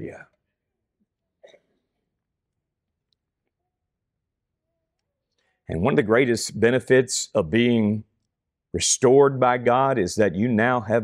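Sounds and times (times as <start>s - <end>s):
man's voice: 0.0s - 0.2s, 5.7s - 8.1s, 8.8s - 11.0s.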